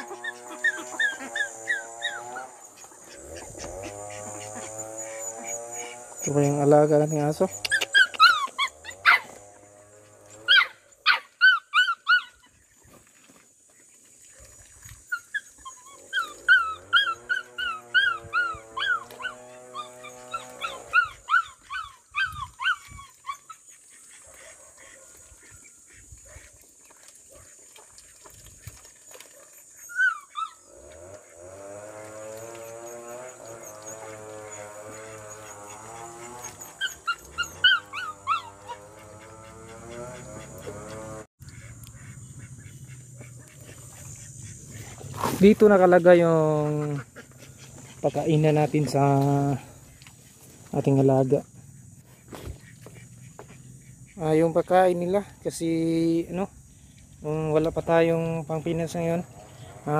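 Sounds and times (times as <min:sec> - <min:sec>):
puppy whimpering and yelping: 0:00.0 - 0:02.6, 0:07.5 - 0:09.4, 0:10.4 - 0:12.5, 0:15.1 - 0:23.7, 0:29.8 - 0:30.7, 0:32.5 - 0:41.0.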